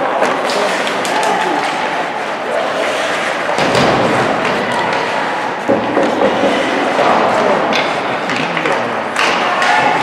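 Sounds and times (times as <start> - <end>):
skates scraping on ice: 0.0 - 8.9
hockey sticks clattering: 0.0 - 10.0.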